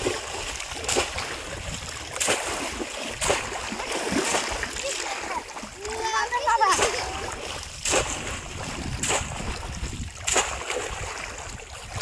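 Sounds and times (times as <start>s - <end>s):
water splashing: 0.0s - 12.0s.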